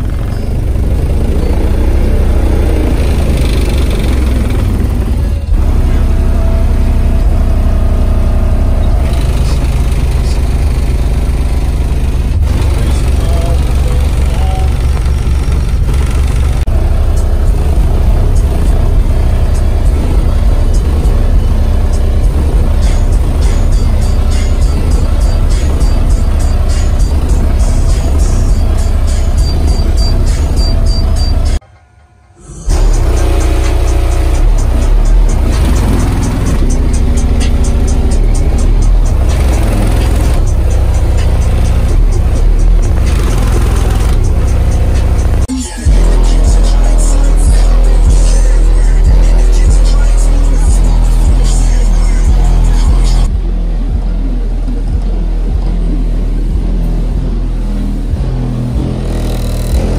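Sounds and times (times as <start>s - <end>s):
bass-heavy music on subwoofers: 0.0s - 31.6s, 32.6s - 59.9s
quick ticking beat: 17.3s - 31.6s.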